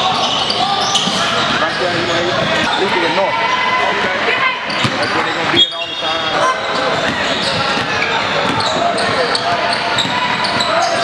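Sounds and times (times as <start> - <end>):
echoing chatter: 0.0 - 11.0
basketballs bouncing on hardwood: 6.9 - 10.8.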